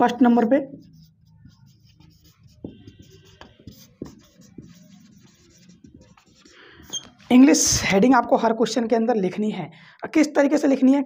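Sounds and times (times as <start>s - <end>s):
marker scratching on whiteboard: 0.0s - 7.8s
marker tapping on whiteboard: 0.9s - 7.0s.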